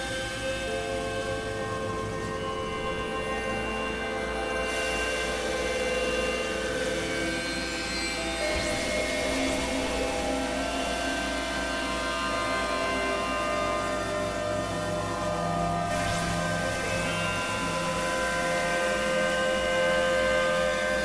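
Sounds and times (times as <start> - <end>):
layered synthesizer drone: 0.0 - 21.0.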